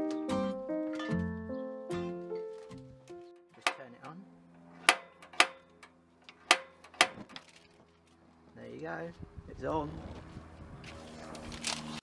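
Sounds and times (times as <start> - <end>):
background piano music: 0.0 - 4.0.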